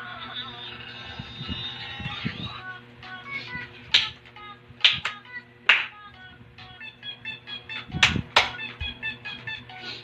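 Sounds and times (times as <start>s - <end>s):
hand claps: 3.9s - 4.2s, 4.8s - 6.0s, 7.8s - 8.9s.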